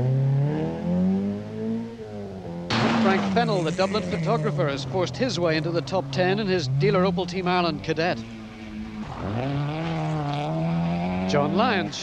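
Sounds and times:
rally car engine revving: 0.0 - 12.0.

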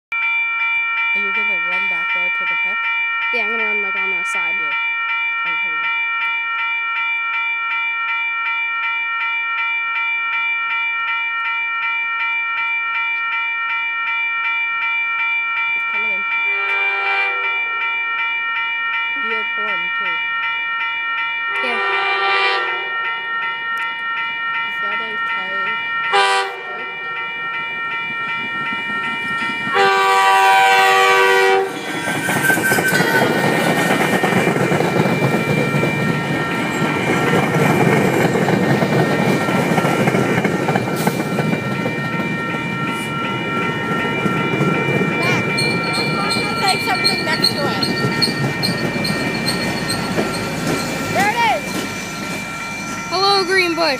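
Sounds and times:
crossing bell ringing: 0.1 - 53.9
diesel locomotive passing: 1.0 - 5.9, 21.1 - 53.9
train horn blasts: 16.5 - 17.8, 21.6 - 23.4, 26.1 - 27.0, 29.7 - 31.9
train wheels clacking over rails: 31.6 - 52.5.

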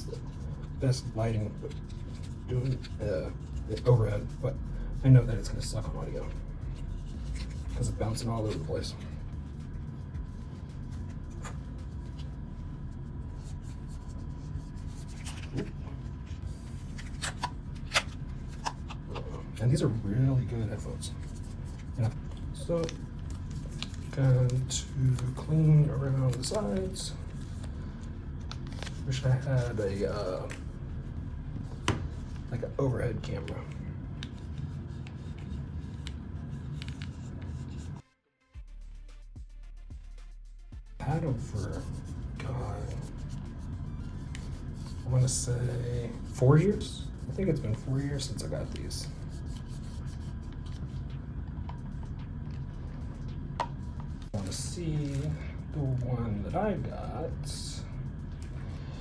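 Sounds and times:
steady low hum: 0.0 - 38.0, 38.6 - 59.0
plastic ear cup rubbing in hands: 5.2 - 38.0, 41.1 - 55.4.

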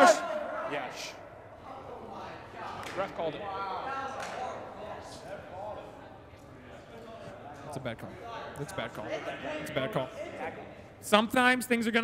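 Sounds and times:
men calling out and talking: 0.0 - 12.0.

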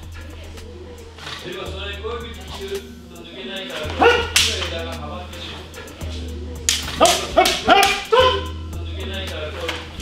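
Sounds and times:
hip-hop beat: 0.0 - 10.0.

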